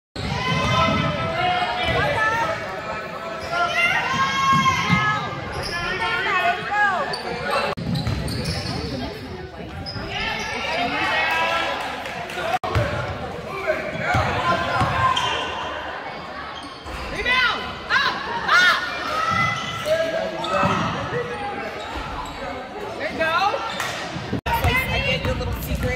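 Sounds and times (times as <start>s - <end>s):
sneakers squeaking: 3.3s - 11.1s, 13.9s - 17.4s, 19.1s - 25.9s.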